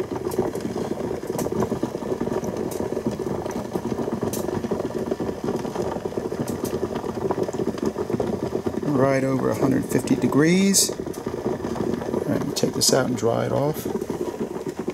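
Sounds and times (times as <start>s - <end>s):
water crackling and bubbling: 0.0s - 14.9s.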